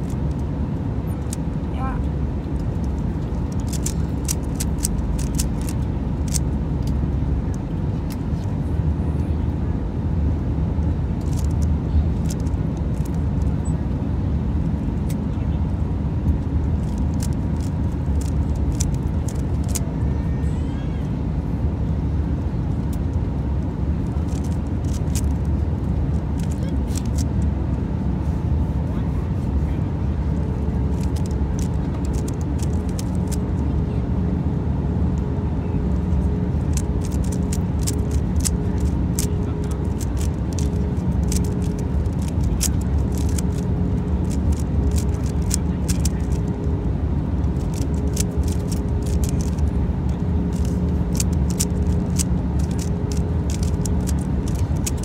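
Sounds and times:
vehicle cabin drone: 0:00.0 - 0:55.0
plastic puzzle cube clicking: 0:02.8 - 0:07.0, 0:11.2 - 0:11.6, 0:12.2 - 0:13.2, 0:16.8 - 0:19.8, 0:24.2 - 0:25.4, 0:26.4 - 0:27.3, 0:30.9 - 0:33.4, 0:36.2 - 0:46.6, 0:47.4 - 0:55.0.

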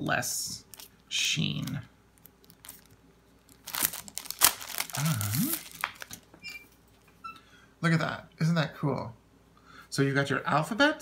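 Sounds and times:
plastic sleeve crinkling: 0:01.6 - 0:06.3.

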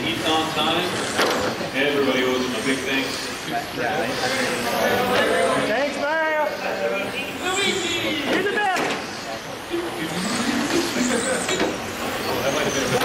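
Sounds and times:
rc car motors whining: 0:00.0 - 0:13.0.

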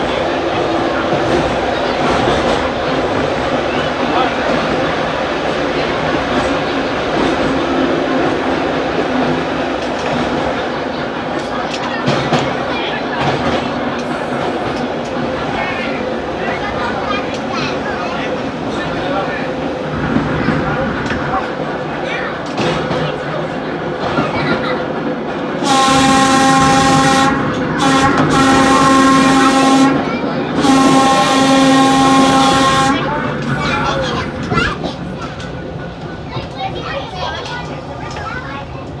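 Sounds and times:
steel wheels rumbling on rails: 0:00.0 - 0:39.0.

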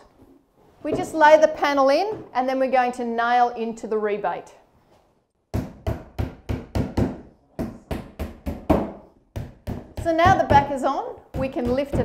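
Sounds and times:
hammer striking nails: 0:05.5 - 0:12.0.

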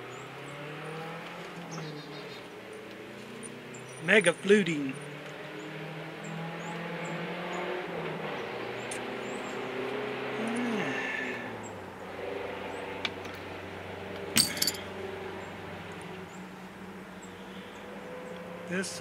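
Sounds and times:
engine-like hum: 0:00.0 - 0:19.0.

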